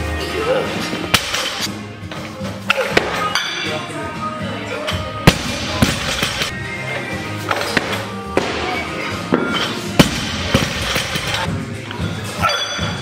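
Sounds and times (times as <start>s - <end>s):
background music with a beat: 4.0s - 12.3s.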